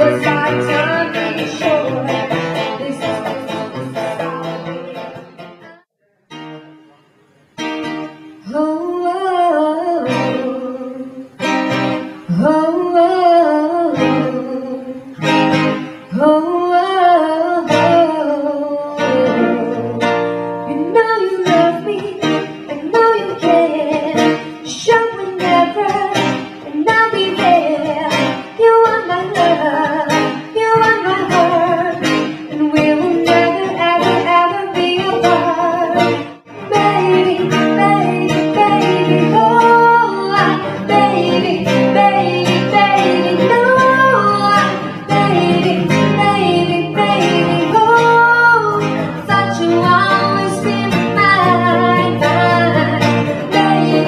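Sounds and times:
person singing: 0:00.0 - 0:05.9, 0:08.4 - 0:54.0
acoustic guitars: 0:00.0 - 0:54.0.

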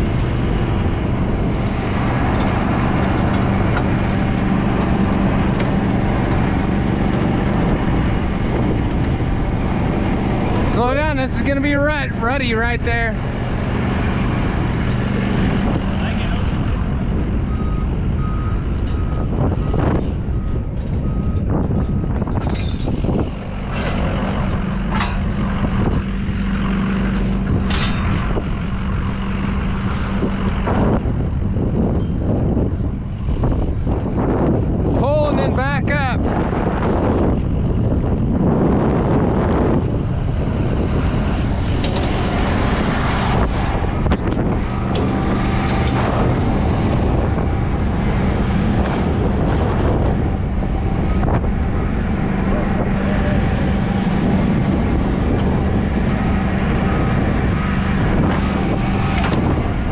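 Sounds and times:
engine droning: 0:00.0 - 0:59.9
wind buffeting microphone: 0:00.0 - 0:59.9
vehicle reversing beeper: 0:16.1 - 0:22.2.

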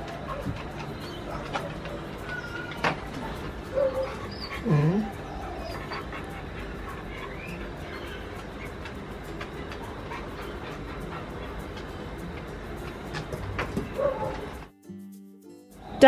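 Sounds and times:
husky vocalising: 0:00.0 - 0:14.7.

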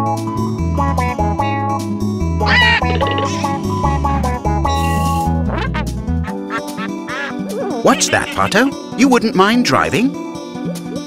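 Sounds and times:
light background music: 0:00.1 - 0:11.0
cartoon duck quacking: 0:02.4 - 0:03.6, 0:05.5 - 0:08.7.

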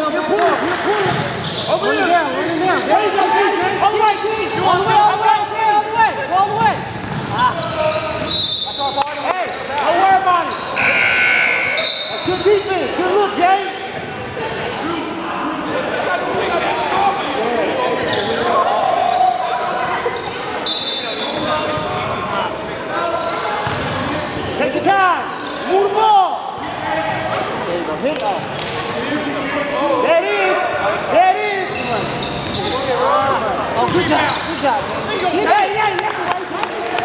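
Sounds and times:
sneaker squeaks: 0:00.0 - 0:03.4, 0:06.2 - 0:09.4, 0:10.4 - 0:13.4, 0:14.2 - 0:24.5, 0:25.2 - 0:27.5, 0:28.1 - 0:35.7
players calling out: 0:00.0 - 0:27.6
basketball bouncing on court: 0:06.4 - 0:08.3, 0:23.6 - 0:24.0.

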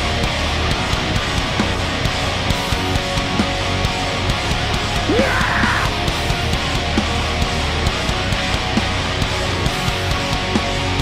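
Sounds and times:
metalcore band playing: 0:00.0 - 0:11.0.

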